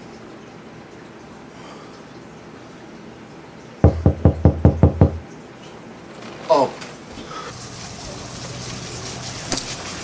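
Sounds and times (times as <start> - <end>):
rapid knocking on a door: 3.8 - 5.2.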